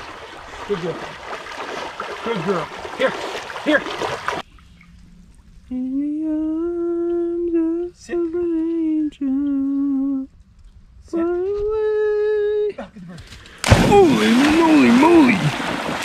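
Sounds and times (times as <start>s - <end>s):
dog splashing through water: 0.0s - 4.4s, 13.6s - 16.0s
person humming a tune: 5.7s - 10.3s.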